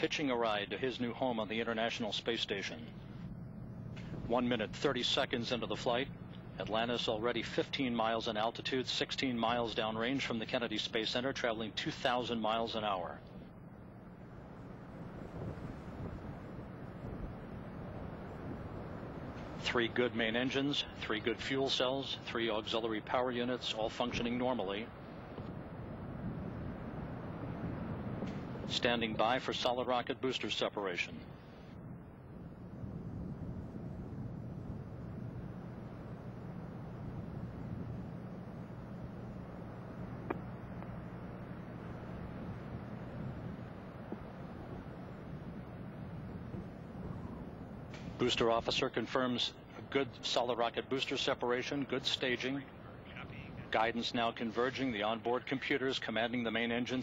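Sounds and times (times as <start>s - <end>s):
distant rocket engines roaring: 0.0s - 57.0s.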